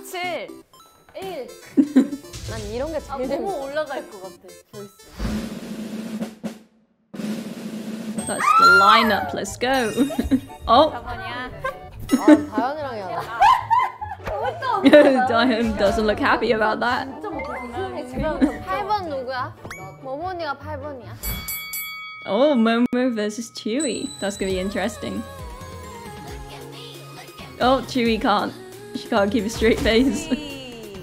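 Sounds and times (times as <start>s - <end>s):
woman speaking: 2.5s - 4.9s, 8.3s - 11.6s, 14.8s - 18.7s, 22.3s - 25.3s, 27.6s - 31.0s
snare drum roll: 5.2s - 6.6s, 7.2s - 8.3s
bright chime sound effect: 21.2s - 25.1s.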